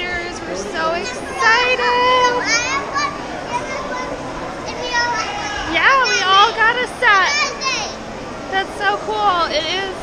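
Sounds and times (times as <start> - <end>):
crowd chatter: 0.0 - 10.0
young child's high voice: 0.9 - 8.0.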